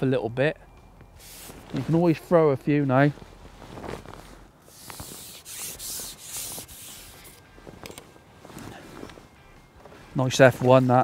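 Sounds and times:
fishing pole rubbing hisses: 4.7s - 7.4s.

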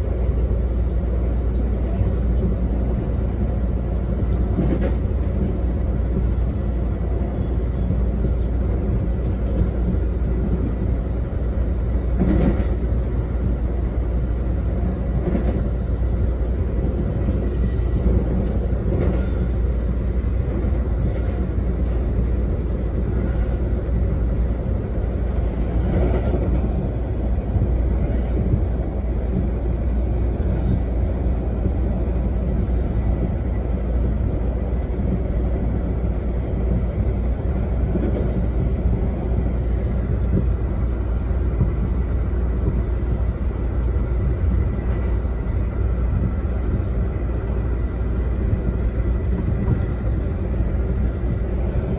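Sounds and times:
train rumbling on track: 0.0s - 51.9s.

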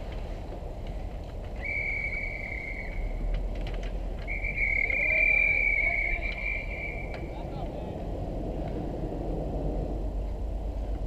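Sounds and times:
referee's whistle blasts: 4.3s - 7.3s.

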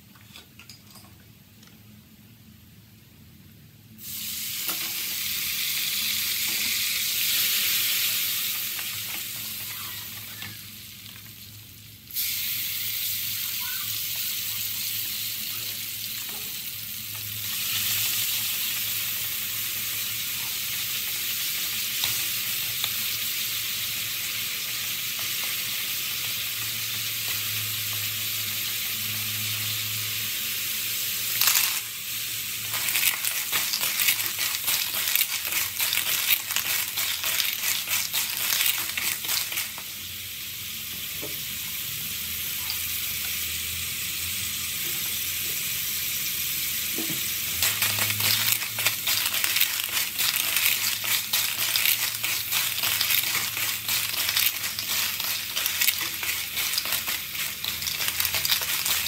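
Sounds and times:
garlic sizzling in oil: 4.0s - 59.0s
shells clattering into pan: 31.3s - 31.9s, 32.6s - 39.9s, 47.1s - 59.0s
wooden spatula stirring: 32.7s - 39.8s, 47.6s - 59.0s.

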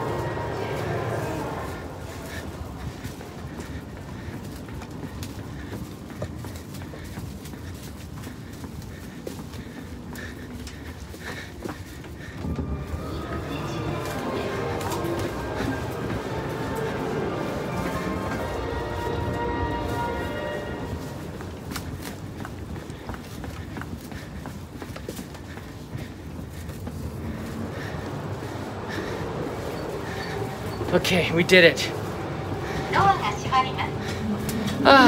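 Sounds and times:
footsteps along train aisle: 0.0s - 35.0s
steady train cabin hum: 0.0s - 35.0s.

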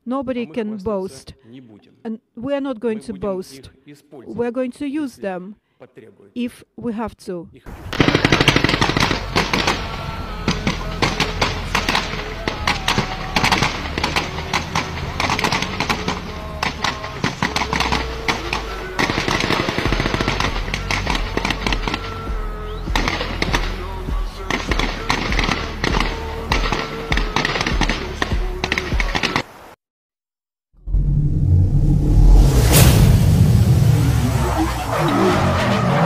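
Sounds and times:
rapid gunfire-like cracks: 7.8s - 22.3s, 22.9s - 29.5s
music with heavy bass line: 8.0s - 26.8s.

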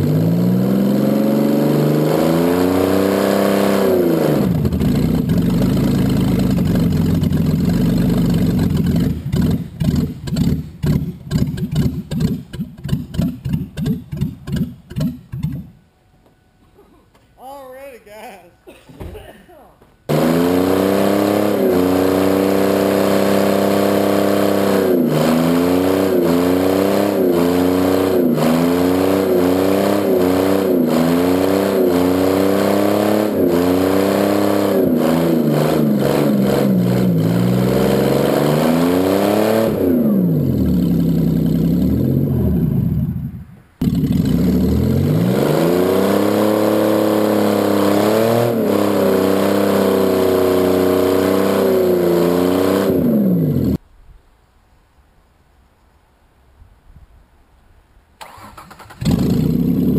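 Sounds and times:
car engine revving hard: 0.0s - 14.0s, 20.1s - 43.2s, 43.8s - 53.8s, 58.2s - 59.9s.

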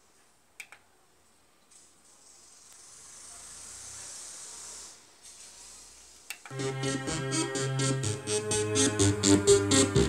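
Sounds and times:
electronic hiss from speakers: 1.6s - 10.0s.

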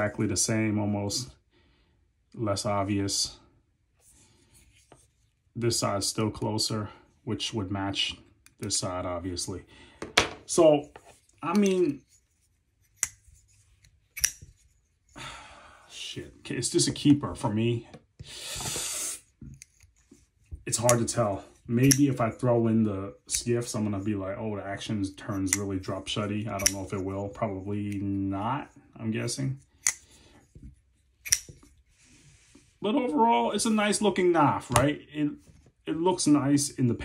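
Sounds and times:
folding knife blade clicks: 14.2s - 14.4s, 26.6s - 26.9s, 31.2s - 31.5s.

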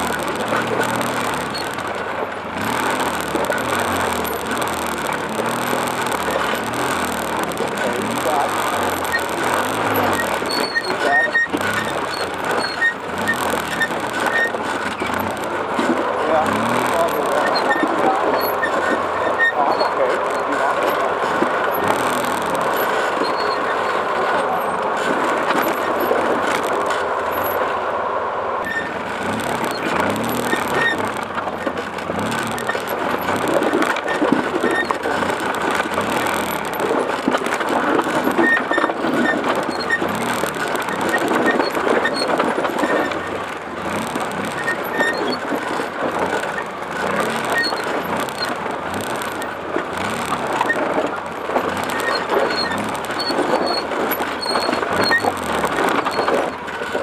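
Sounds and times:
quad bike engine running: 0.0s - 57.0s.

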